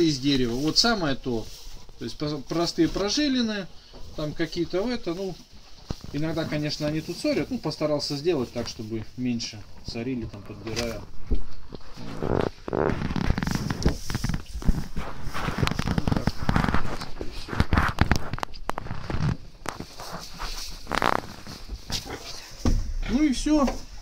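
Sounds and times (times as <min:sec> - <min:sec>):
dry hay rustling and crackling: 0:00.0 - 0:10.2, 0:10.8 - 0:23.7.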